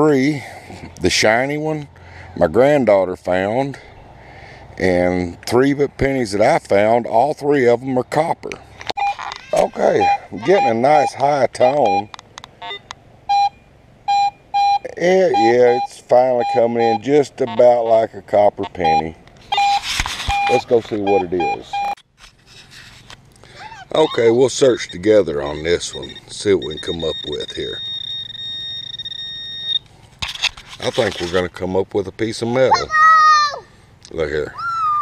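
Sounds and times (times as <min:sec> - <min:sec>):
metal detector beeps: 0:09.0 - 0:18.0, 0:18.7 - 0:22.0, 0:23.9 - 0:31.3
scraping rustle: 0:19.4 - 0:21.2, 0:22.0 - 0:23.3, 0:29.9 - 0:31.6.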